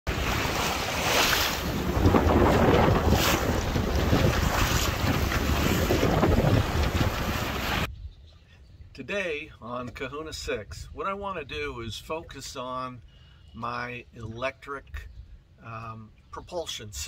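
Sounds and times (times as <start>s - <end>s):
water rushing along hull: 0.1s - 7.9s
wind buffeting microphone: 0.1s - 8.9s.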